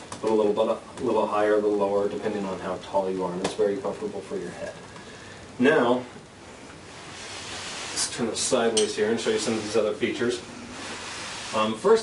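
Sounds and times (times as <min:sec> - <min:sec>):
low steady hiss: 0:00.0 - 0:12.0
soft rustling noise: 0:00.2 - 0:12.0.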